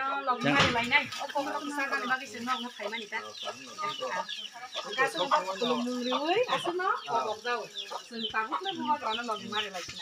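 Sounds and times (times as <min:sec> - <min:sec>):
chickens clucking: 0:00.0 - 0:10.0
people talking: 0:00.0 - 0:10.0.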